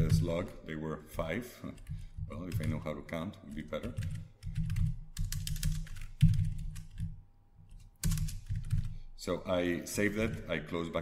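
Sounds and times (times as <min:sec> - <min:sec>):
computer keyboard typing: 0:01.7 - 0:02.9, 0:03.5 - 0:09.0.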